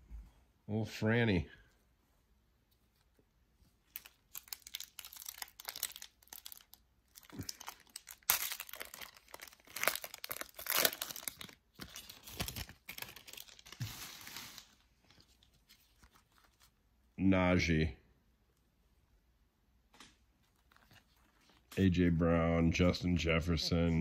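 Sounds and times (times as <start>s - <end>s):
foil wrapper tearing and crinkling: 3.9s - 16.7s.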